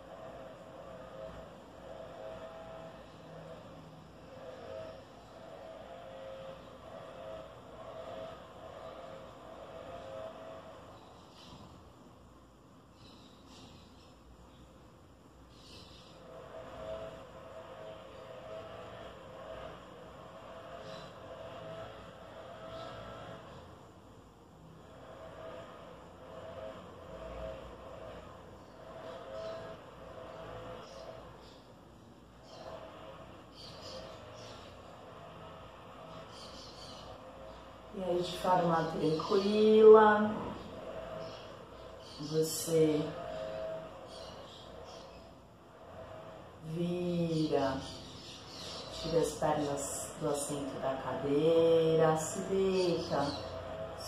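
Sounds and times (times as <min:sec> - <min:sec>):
steady hum with wavering tones: 0:00.0 - 0:54.0.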